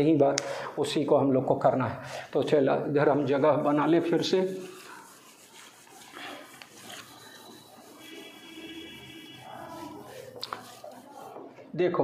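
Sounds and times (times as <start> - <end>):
hand wiping whiteboard: 3.1 - 11.6.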